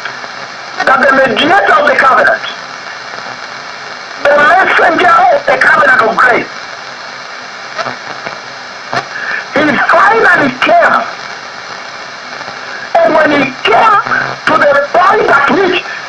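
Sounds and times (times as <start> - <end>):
steady hiss: 0.0 - 16.0
man preaching on radio: 0.8 - 2.6, 4.2 - 6.5, 9.2 - 11.2, 12.8 - 16.0.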